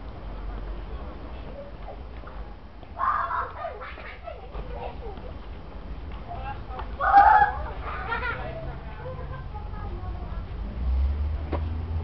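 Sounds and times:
voices calling out: 0:02.9 - 0:10.6
loud shout: 0:03.0 - 0:03.9, 0:07.0 - 0:08.1.

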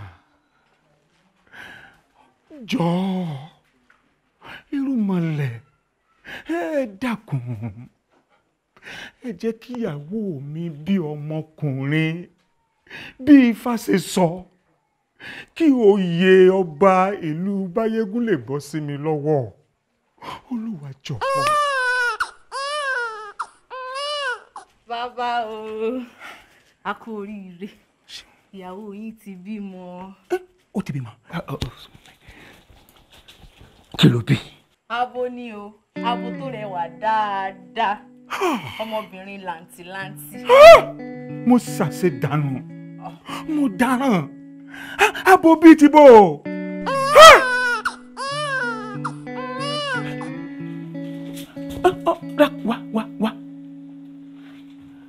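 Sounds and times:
man sobbing: 0:06.3 - 0:08.0, 0:20.5 - 0:22.7, 0:38.3 - 0:39.0, 0:40.4 - 0:41.0, 0:43.1 - 0:44.2, 0:44.8 - 0:46.1, 0:46.9 - 0:50.4, 0:51.8 - 0:53.4
man wailing: 0:21.1 - 0:21.9, 0:38.3 - 0:38.8, 0:40.4 - 0:41.0, 0:45.0 - 0:50.3, 0:51.8 - 0:53.4
sustained instrumental notes: 0:36.0 - 0:55.0
man singing long cries: 0:40.4 - 0:40.9, 0:46.9 - 0:47.5, 0:51.9 - 0:53.5.

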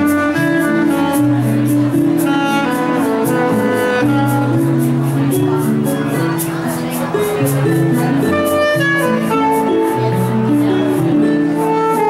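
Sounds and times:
alto saxophone melody: 0:00.0 - 0:12.0
keyboard chords: 0:00.0 - 0:12.0
light percussion beat: 0:00.0 - 0:12.0.

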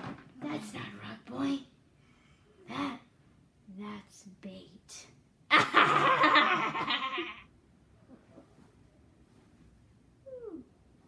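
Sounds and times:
child laughing: 0:05.5 - 0:07.5.

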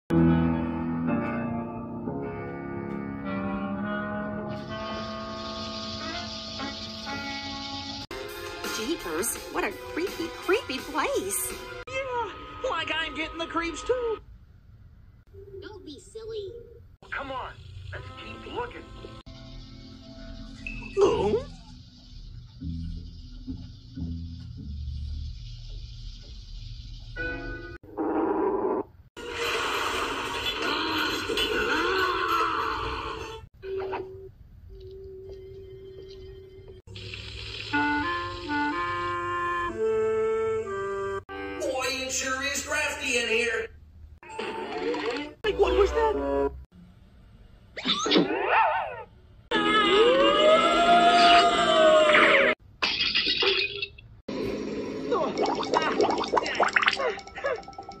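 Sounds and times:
running shower hiss: 0:04.8 - 0:09.4, 0:21.6 - 0:27.2.

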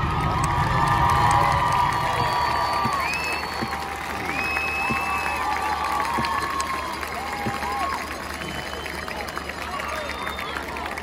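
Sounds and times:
people clapping: 0:00.0 - 0:11.0
stadium crowd cheering: 0:00.0 - 0:11.0.

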